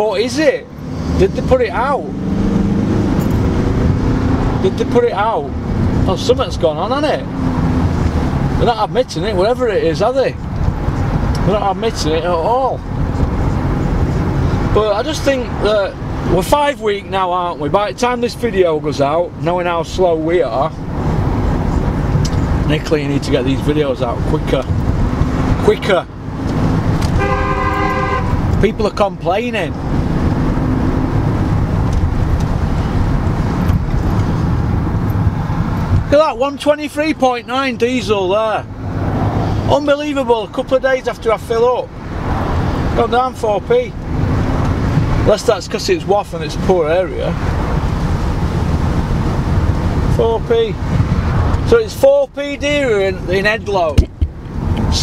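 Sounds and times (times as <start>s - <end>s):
car cabin road and engine noise: 0.0s - 55.0s
car horn: 27.1s - 28.5s.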